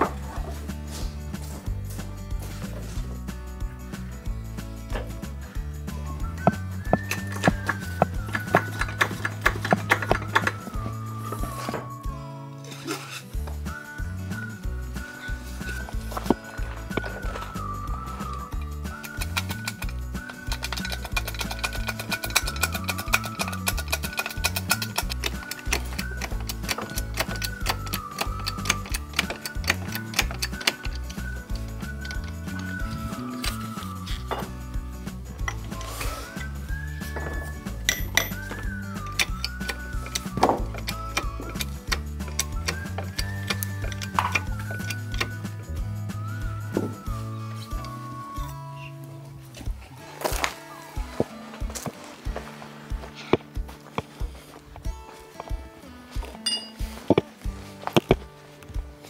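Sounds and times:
background music melody: 0.0s - 59.0s.

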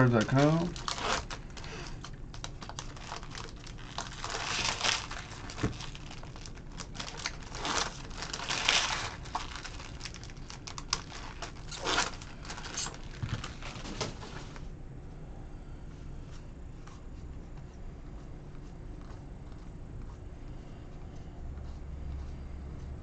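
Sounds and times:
wrappers crinkling and tearing: 0.0s - 14.6s.

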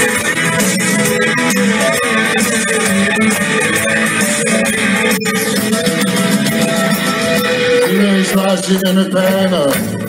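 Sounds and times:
guitar: 0.0s - 10.0s
soul band playing: 0.0s - 10.0s.

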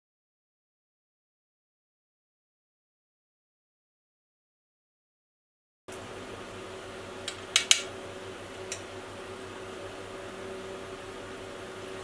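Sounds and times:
fan hum: 5.9s - 12.0s.

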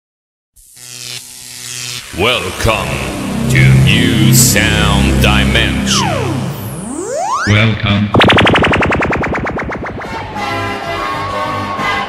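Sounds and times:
low electronic buzz: 0.6s - 11.0s.

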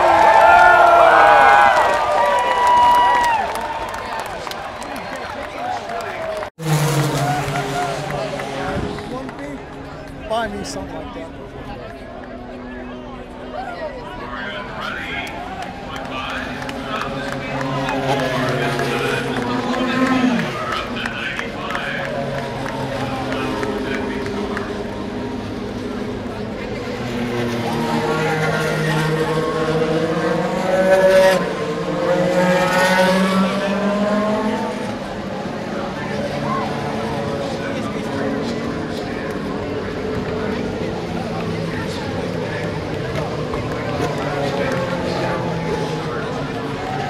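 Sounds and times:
race car engines passing: 0.0s - 47.0s.

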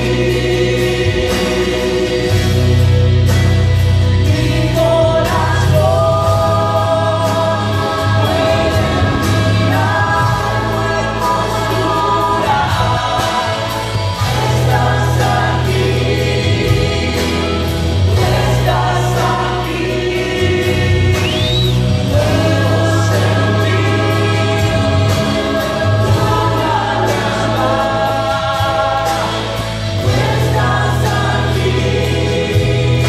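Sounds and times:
band with bass and beat: 0.0s - 33.0s
voices singing worship song: 0.0s - 33.0s.

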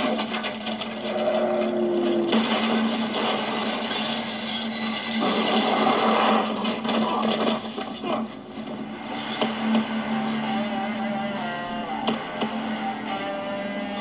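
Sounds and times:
rock and debris clattering: 0.0s - 9.6s
vehicle crashing down rocky slope: 0.0s - 10.0s.

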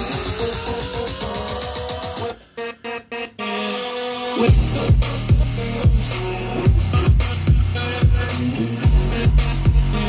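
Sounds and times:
electronic dance music: 0.0s - 10.0s
hi-hats: 4.4s - 10.0s
kick drum beat: 4.5s - 6.1s, 6.7s - 8.2s, 8.8s - 9.9s.

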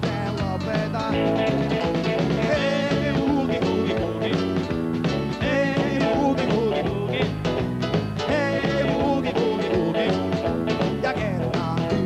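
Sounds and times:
bass guitar: 0.0s - 12.0s
drums: 0.0s - 12.0s
electric guitar: 0.0s - 12.0s.

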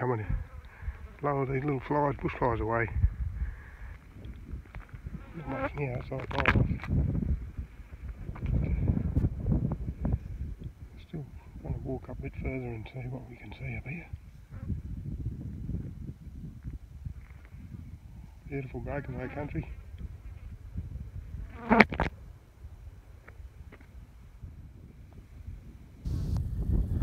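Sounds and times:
wind gusting across microphone: 0.0s - 27.0s.

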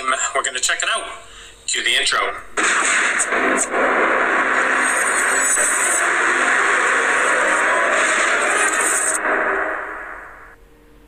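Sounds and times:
loud noisy sound effect: 2.6s - 10.6s.

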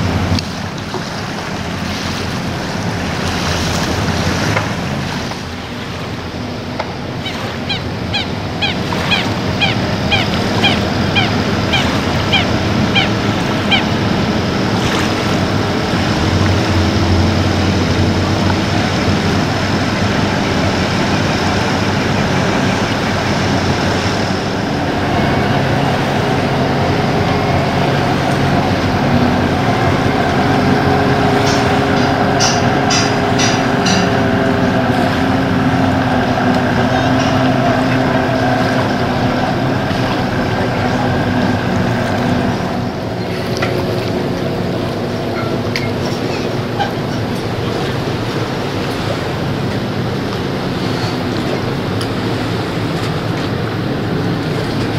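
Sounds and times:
boat engine running: 0.0s - 54.9s.

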